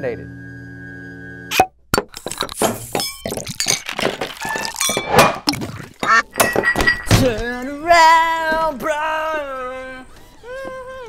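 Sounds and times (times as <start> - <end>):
glasses clinking and knocking: 2.0 - 7.6
person singing: 7.1 - 11.0.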